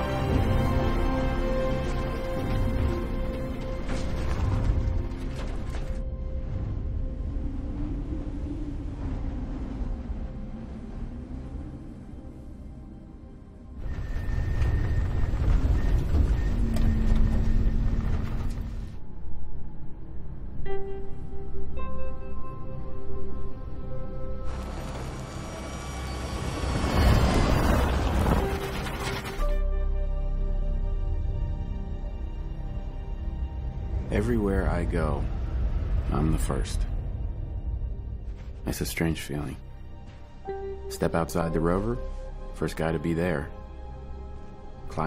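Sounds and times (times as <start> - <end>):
rover rumbling over rocky ground: 0.0 - 7.2, 13.8 - 19.0, 24.4 - 29.6
low rumble: 0.0 - 42.7
film score held tones: 0.0 - 45.0
rushing wind-like noise: 6.4 - 12.5.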